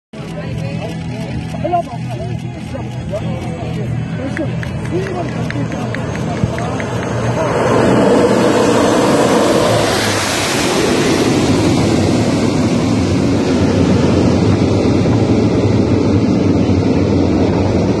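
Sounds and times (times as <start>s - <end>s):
turboprop aircraft passing: 0.2s - 18.0s.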